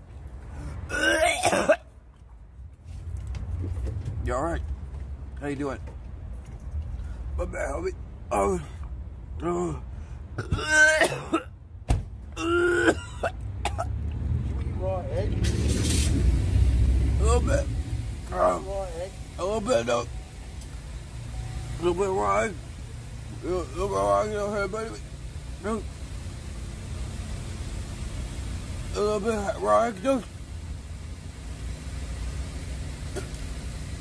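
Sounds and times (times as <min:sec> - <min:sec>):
man groaning and coughing: 0:00.9 - 0:01.9, 0:10.4 - 0:11.6, 0:12.4 - 0:13.9
passing vehicle rumble: 0:13.3 - 0:34.0.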